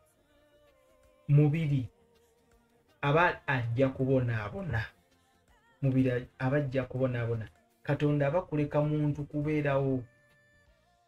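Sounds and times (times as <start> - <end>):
man speaking: 1.3 - 1.9, 3.0 - 4.9, 5.8 - 10.1.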